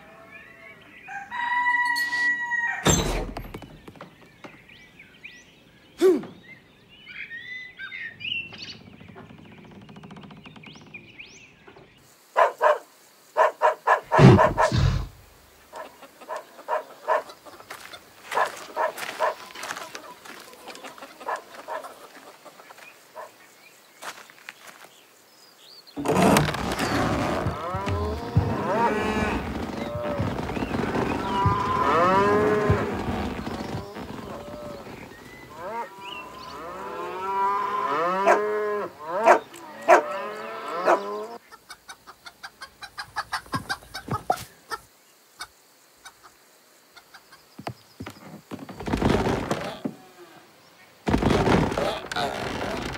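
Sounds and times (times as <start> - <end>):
chickens clucking: 15.6 - 23.3, 41.4 - 47.5
cattle mooing: 27.5 - 41.4.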